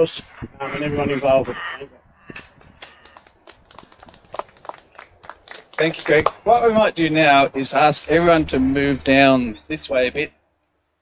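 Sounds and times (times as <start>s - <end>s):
small group clapping: 2.4s - 6.5s.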